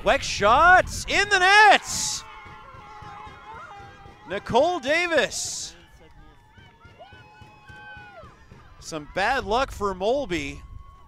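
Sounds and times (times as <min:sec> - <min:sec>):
distant players shouting and cheering: 0:00.0 - 0:11.0.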